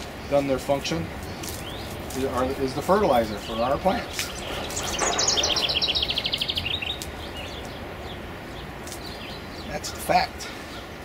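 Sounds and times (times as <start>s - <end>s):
faint outdoor background: 0.0s - 11.0s
songbird trilling: 1.2s - 9.8s.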